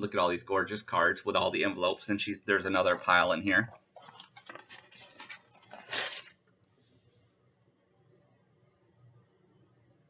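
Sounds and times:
paper and envelopes rustling: 2.8 - 6.4.

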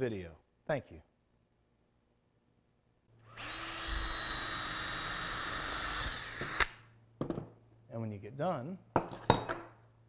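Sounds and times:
cordless drill boring a hole: 3.2 - 6.8.

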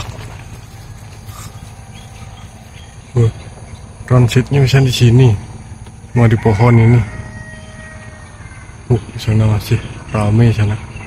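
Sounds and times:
faint bird call: 0.0 - 3.8, 7.1 - 9.2.

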